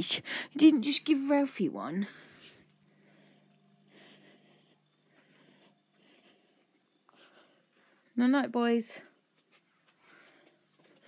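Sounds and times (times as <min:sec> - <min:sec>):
faint low hum: 0:00.0 - 0:11.0
faint soft rustles: 0:08.9 - 0:11.0.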